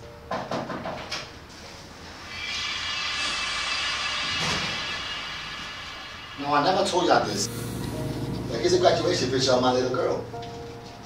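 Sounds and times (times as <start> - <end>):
whooshing swell with hum: 2.1 - 11.0.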